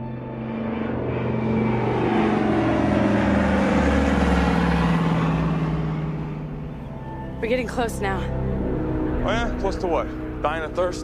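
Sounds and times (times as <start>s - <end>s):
deep rumble: 0.0s - 11.0s
tone sliding down in pitch: 0.0s - 11.0s.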